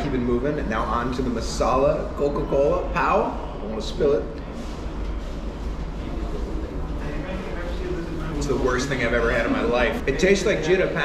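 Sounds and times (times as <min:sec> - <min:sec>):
murmur of background voices: 0:00.0 - 0:11.0
restaurant room rumble: 0:00.0 - 0:11.0.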